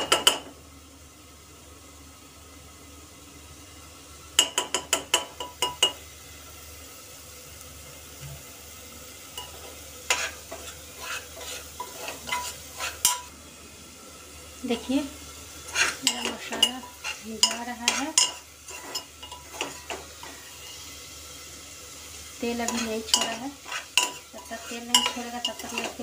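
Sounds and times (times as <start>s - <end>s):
low sizzle of frying: 0.0s - 26.0s
metal spoon clinking on pot: 4.4s - 6.0s, 16.1s - 20.0s, 22.7s - 26.0s.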